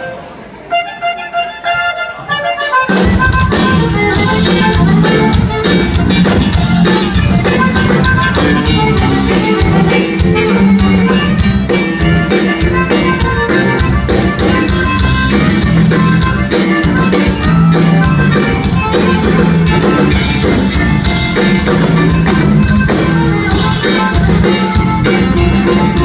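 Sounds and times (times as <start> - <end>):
button accordion melody: 0.0 - 26.0
bass guitar: 2.4 - 26.0
drum kit steady beat: 2.6 - 26.0.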